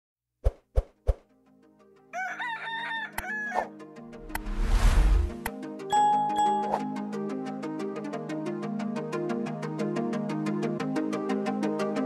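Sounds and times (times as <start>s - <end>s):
soft musical tones: 5.9s - 7.4s.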